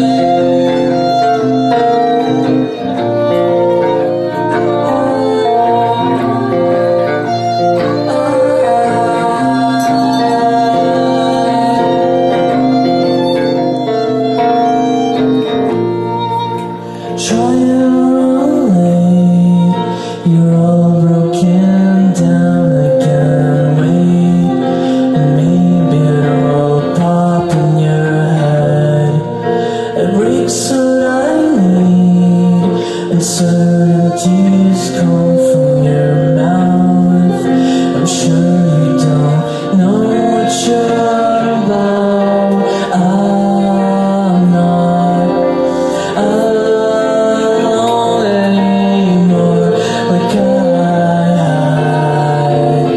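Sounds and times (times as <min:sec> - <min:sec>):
strummed guitar: 0:00.0 - 0:52.9
violin melody: 0:00.0 - 0:52.9.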